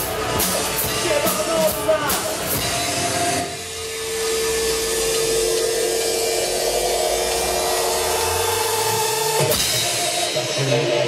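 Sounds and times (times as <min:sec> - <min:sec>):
distorted electric guitar drone: 0:00.0 - 0:11.0
drums: 0:00.0 - 0:11.0
high ringing feedback tone: 0:02.6 - 0:11.0.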